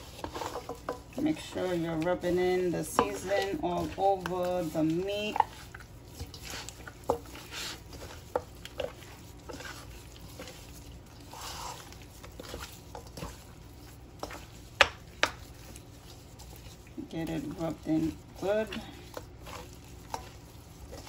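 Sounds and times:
ribs knocking against bowl: 0.2 - 6.4
hands rubbing seasoning into meat: 1.2 - 21.0.

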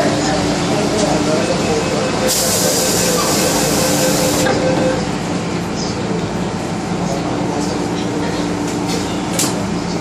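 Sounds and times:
train equipment hum: 0.1 - 6.9
train doors closing hiss: 2.3 - 4.6.

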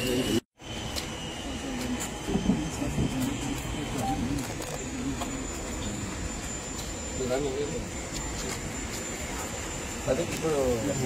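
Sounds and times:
group of people talking: 1.3 - 11.0.

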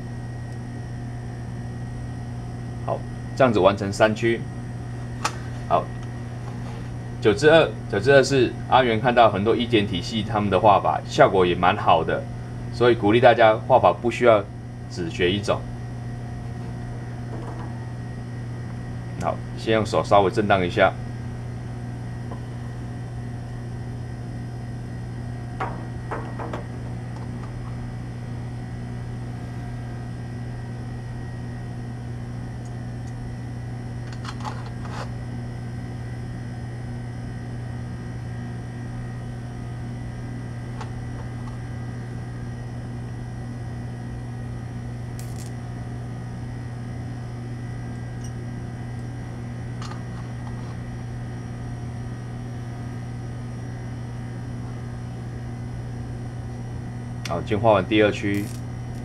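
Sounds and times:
ventilation hum: 0.0 - 59.0.

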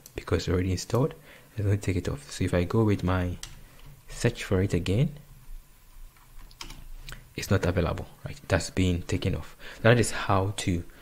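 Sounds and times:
computer keyboard key clicks: 6.5 - 6.8.

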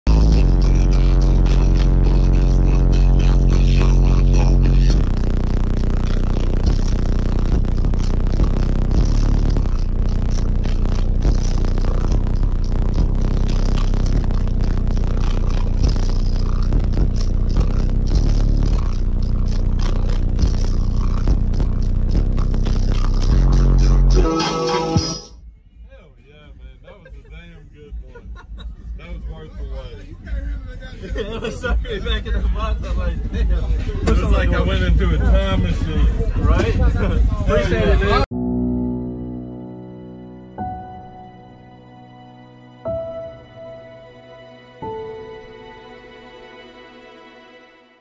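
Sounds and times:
loud bass-heavy music from subwoofers: 0.0 - 26.2, 26.8 - 45.9.

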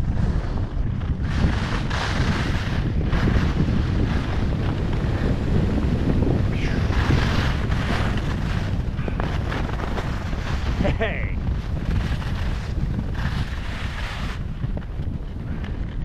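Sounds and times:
skis carving on snow: 0.0 - 16.0
wind buffeting microphone: 0.0 - 16.0.

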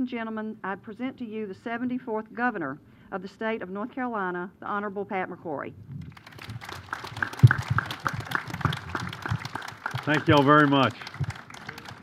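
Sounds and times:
audience applauding: 6.1 - 12.0.

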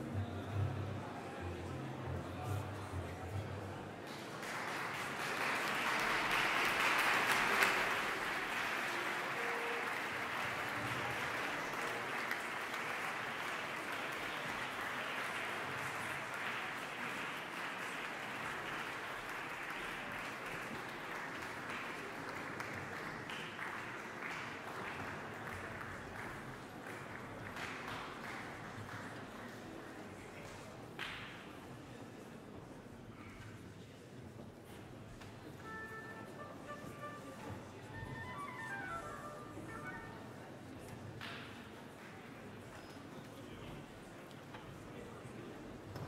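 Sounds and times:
audience applauding: 4.0 - 30.4, 35.6 - 37.3, 37.9 - 41.4.

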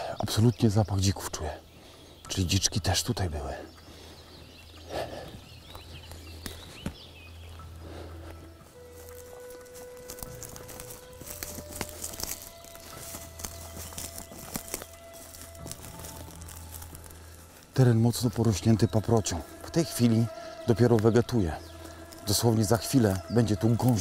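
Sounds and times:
music of long held notes: 0.3 - 24.0
footsteps on leaf litter and twigs: 3.8 - 24.0.

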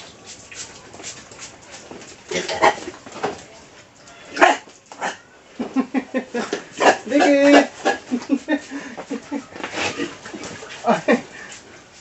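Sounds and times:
pig squealing: 4.0 - 5.4, 9.4 - 10.4.

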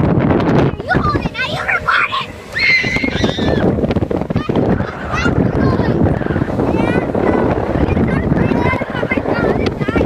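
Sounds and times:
motorboat noise: 0.0 - 10.0
wind: 0.0 - 10.0
passengers shrieking: 0.8 - 7.1.

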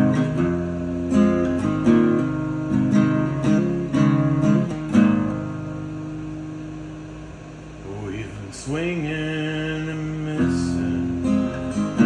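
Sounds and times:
acoustic guitar chord ringing: 0.0 - 12.0
person's voice: 7.8 - 11.2.

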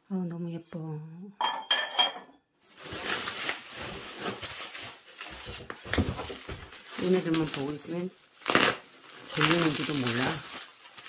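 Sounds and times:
ceramic pot clinking on floor: 1.4 - 2.5
bubble wrap rustling: 2.6 - 11.0.

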